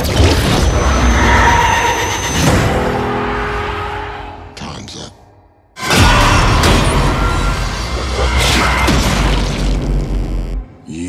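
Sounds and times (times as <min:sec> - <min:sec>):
noisy trailer sound effects: 0:00.0 - 0:11.0.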